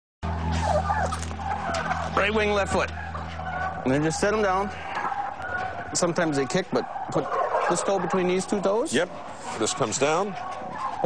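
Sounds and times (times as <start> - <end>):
steady low hum: 0.2 - 7.3
turkeys calling: 0.2 - 11.0.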